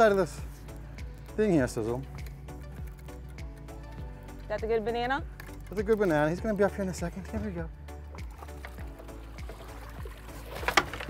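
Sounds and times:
faint music: 0:00.0 - 0:11.0
splash and knock: 0:08.2 - 0:11.0.

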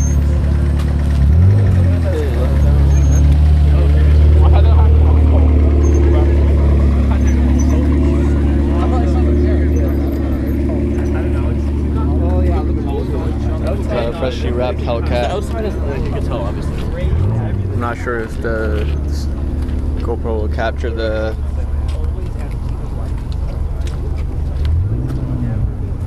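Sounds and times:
engine revving: 0:00.0 - 0:21.4, 0:22.4 - 0:26.0
sports car engine idling: 0:00.0 - 0:26.0.

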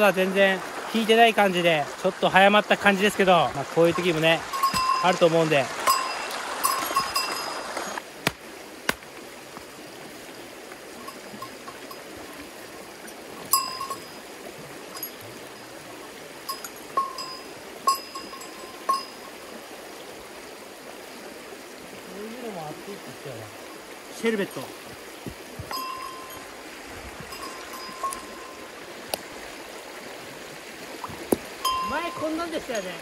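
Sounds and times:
creek rushing: 0:00.0 - 0:33.0
ringing metallic clinks: 0:04.5 - 0:07.6, 0:13.1 - 0:14.2, 0:16.5 - 0:19.3, 0:25.7 - 0:26.5, 0:27.3 - 0:28.6.

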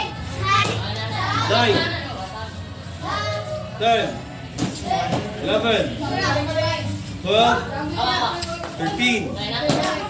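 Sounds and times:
children talking and calling out: 0:00.0 - 0:05.4, 0:06.0 - 0:10.0.

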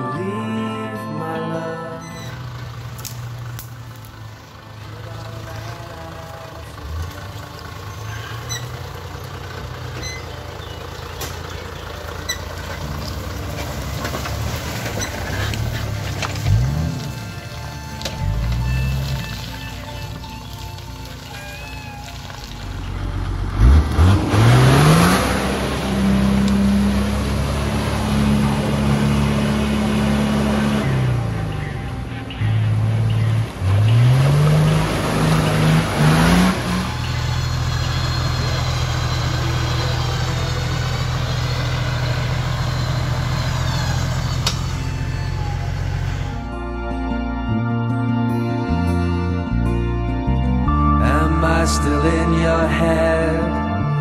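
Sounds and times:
low engine drone: 0:00.0 - 0:54.0
tyres churning through mud: 0:02.0 - 0:46.6
engine revving hard: 0:13.4 - 0:19.6, 0:22.8 - 0:46.5.

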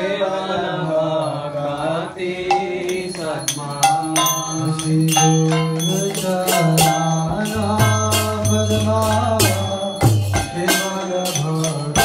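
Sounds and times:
voices chanting a mantra: 0:00.0 - 0:12.0.

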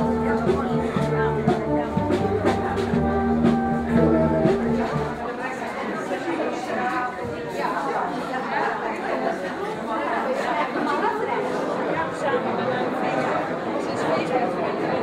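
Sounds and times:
music: 0:00.0 - 0:05.4
chatter of many people: 0:00.0 - 0:15.0.

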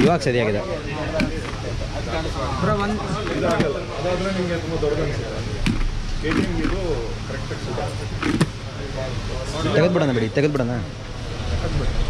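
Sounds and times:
indistinct voices: 0:00.0 - 0:12.0
low rumble of road traffic: 0:00.0 - 0:12.0.

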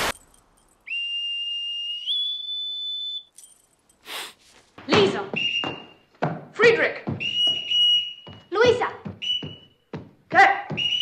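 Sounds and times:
metal whistle blown: 0:00.8 - 0:03.4, 0:05.4 - 0:06.1, 0:07.2 - 0:08.6, 0:09.2 - 0:09.8, 0:10.8 - 0:11.0.

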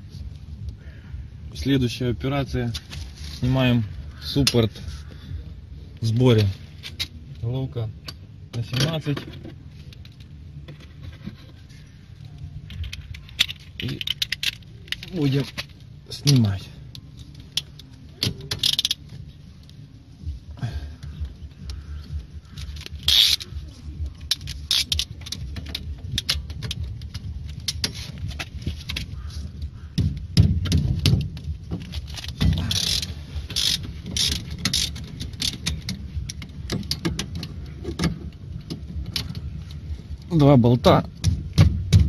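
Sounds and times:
low background hum: 0:00.0 - 0:42.0.

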